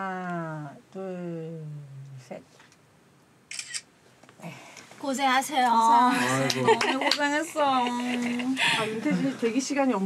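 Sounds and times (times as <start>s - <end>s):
camera shutter click: 3.5s - 3.9s.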